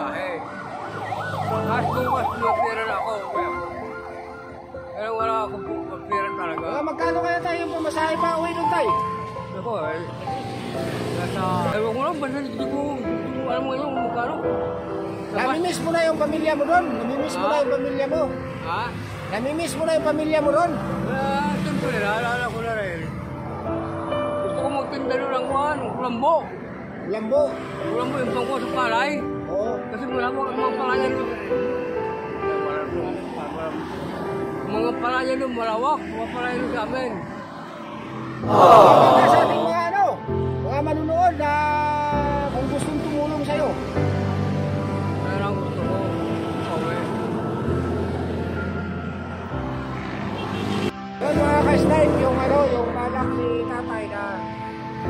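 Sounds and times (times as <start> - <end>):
background music: 0.0 - 55.0
man talking: 1.6 - 3.4, 38.5 - 43.8, 51.2 - 54.3
man speaking: 38.5 - 40.2.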